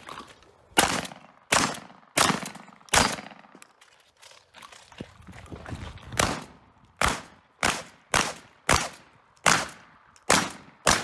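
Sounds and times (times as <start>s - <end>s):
shotgun shots: 0.8s - 3.5s, 6.2s - 11.0s.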